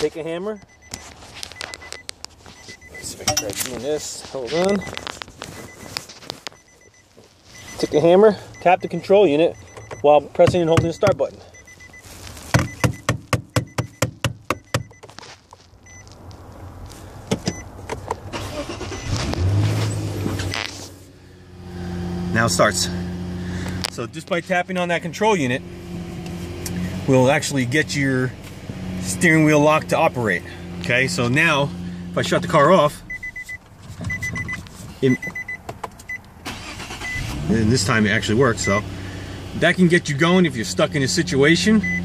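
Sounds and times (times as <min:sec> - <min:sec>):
car engine cranking and starting: 0:00.2 - 0:15.0, 0:15.8 - 0:42.0
electronic beeping: 0:00.5 - 0:03.8, 0:04.5 - 0:05.0, 0:05.6 - 0:05.9, 0:06.5 - 0:15.1, 0:33.1 - 0:36.2
handling clicks and knocks: 0:09.6 - 0:11.3, 0:12.4 - 0:15.7, 0:17.2 - 0:18.3, 0:33.7 - 0:36.1.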